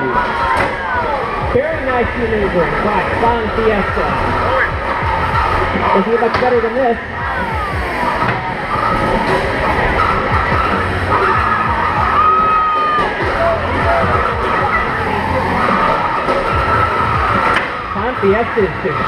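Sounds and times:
crowd din: 0.0s - 19.0s
electric motors whining: 0.0s - 19.0s
music: 0.0s - 19.0s.

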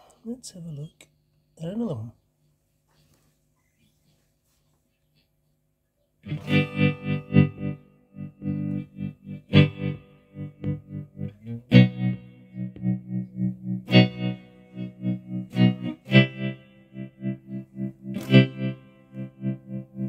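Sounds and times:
electric guitar with tremolo: 6.2s - 20.0s.

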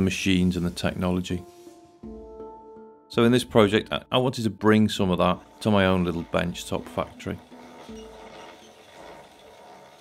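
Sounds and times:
hand-cranked lathe running: 4.7s - 10.0s.

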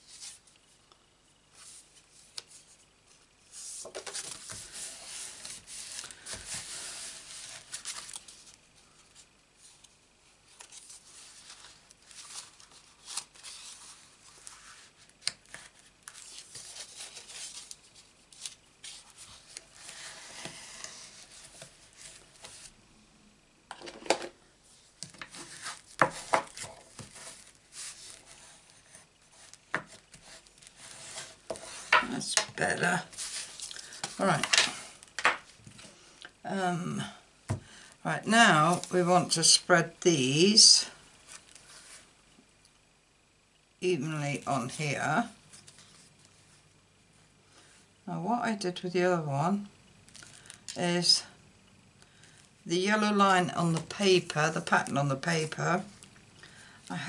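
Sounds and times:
paper rustling: 3.5s - 9.9s, 10.5s - 22.7s, 25.0s - 35.9s.

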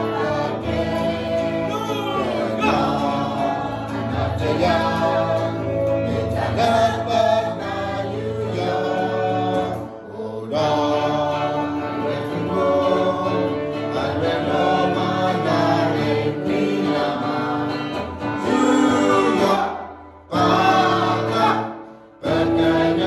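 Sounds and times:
group of men and women singing: 0.0s - 23.0s.

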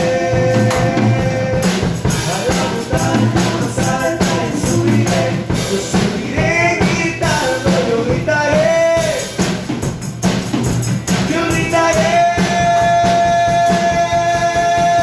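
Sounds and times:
acoustic guitar: 0.0s - 15.0s
drum kit: 0.0s - 15.0s.

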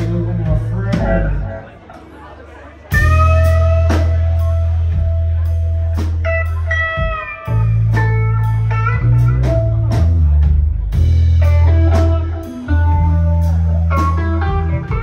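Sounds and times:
live blues band playing: 0.0s - 15.0s.

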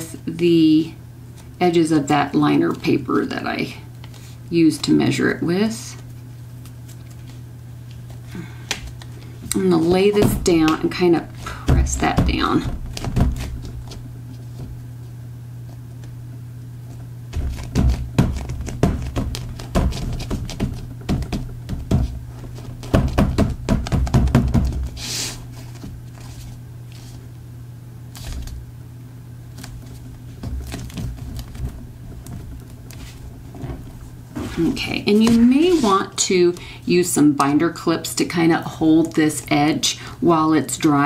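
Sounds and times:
steady low hum: 0.0s - 41.0s
paper rustling: 6.0s - 8.2s, 24.5s - 27.3s, 28.1s - 28.6s, 29.5s - 36.7s
hands tapping cardstock: 8.6s - 14.8s, 17.3s - 25.0s, 34.6s - 36.7s.

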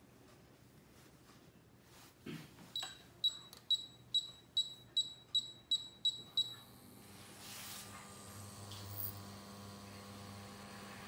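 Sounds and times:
cooktop touch control beeps: 2.8s - 6.7s.

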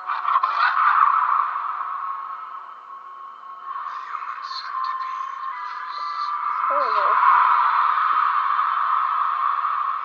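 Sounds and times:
noisy sound effects swell: 1.0s - 10.0s.

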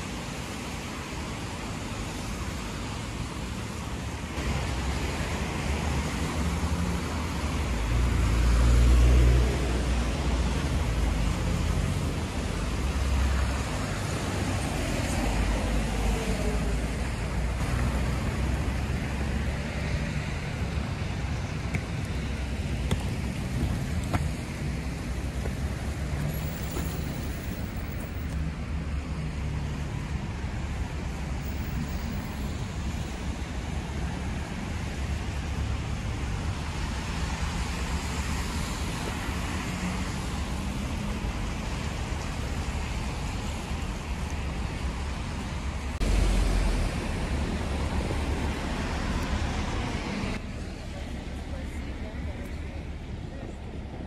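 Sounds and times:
low traffic rumble: 0.0s - 54.0s
tyres hissing on wet road: 0.0s - 54.0s.

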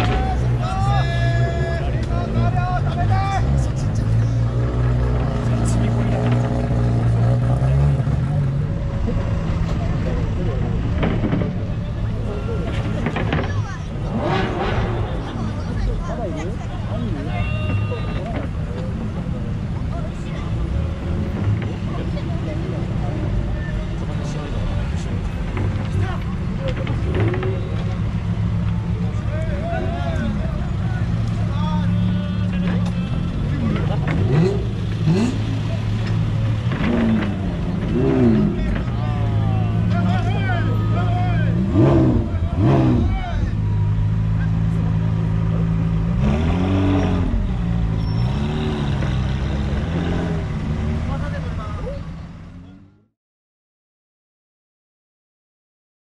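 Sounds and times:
voices calling out: 0.0s - 53.0s
car engines droning: 0.0s - 53.1s.

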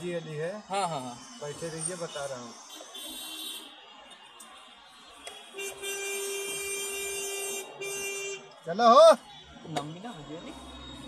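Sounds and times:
vehicle horn honking: 5.3s - 8.6s.

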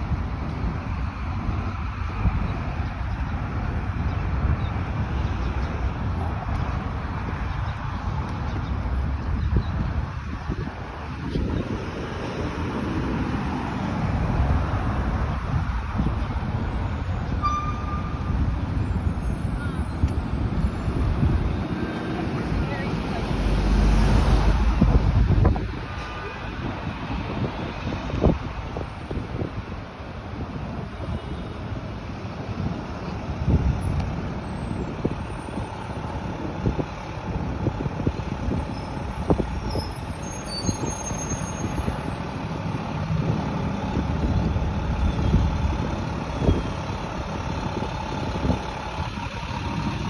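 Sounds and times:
wind buffeting microphone: 0.0s - 40.9s, 41.6s - 50.0s
road traffic rumble: 0.0s - 50.0s
faint high squeal: 39.6s - 41.9s.

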